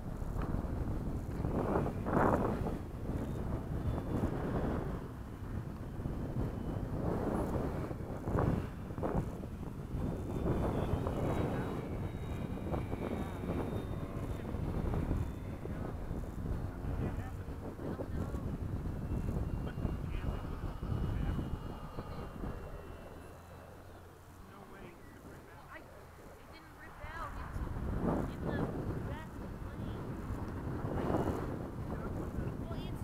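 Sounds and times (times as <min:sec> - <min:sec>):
model plane electric motor whine: 0:00.0 - 0:33.0
wind buffeting microphone: 0:00.0 - 0:33.0.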